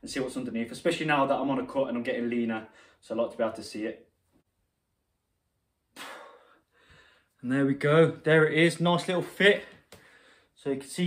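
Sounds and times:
sharp exhale: 0:06.0 - 0:07.3.

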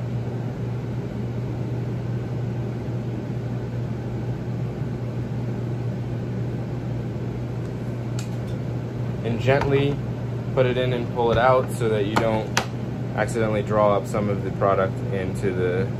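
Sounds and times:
low mechanical hum with hiss: 0:00.0 - 0:15.9.

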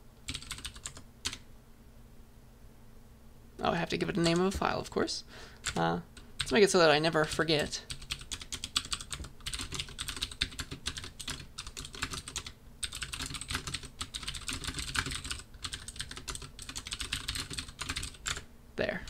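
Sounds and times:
typing on computer keyboard: 0:00.2 - 0:01.4, 0:05.6 - 0:06.6, 0:07.9 - 0:18.4.

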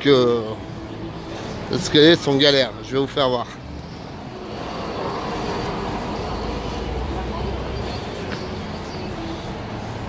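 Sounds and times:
faint voices: 0:00.0 - 0:10.0
heavy vehicle engine rumble: 0:00.5 - 0:10.0.

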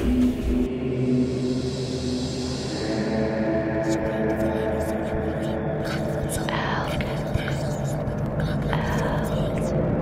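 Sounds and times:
low ambient drone: 0:00.0 - 0:10.0
whispering voices: 0:02.7 - 0:10.0.

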